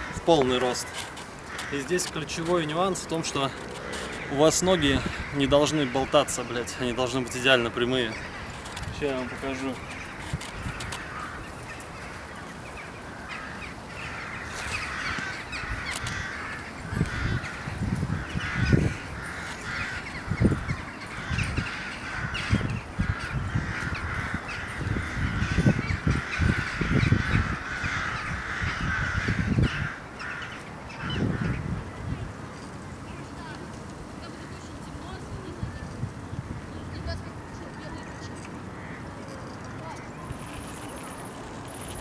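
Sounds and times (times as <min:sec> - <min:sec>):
crows cawing: 0:00.0 - 0:32.1, 0:37.4 - 0:42.0
wind buffeting microphone: 0:00.0 - 0:42.0.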